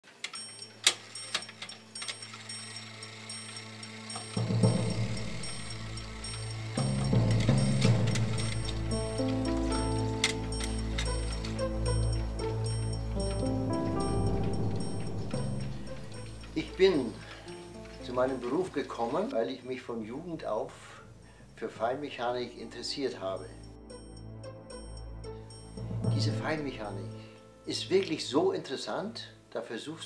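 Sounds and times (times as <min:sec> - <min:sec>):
clockwork clicking and ratcheting: 0:00.0 - 0:18.8, 0:22.7 - 0:24.2
music with low drone: 0:00.4 - 0:19.3, 0:20.1 - 0:28.6.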